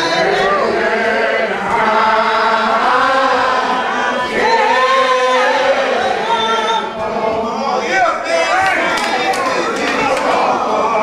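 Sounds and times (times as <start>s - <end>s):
congregation singing: 0.0s - 11.0s.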